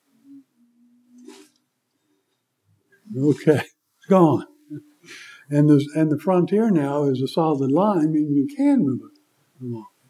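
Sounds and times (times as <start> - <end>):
short breath: 5.0 - 5.5.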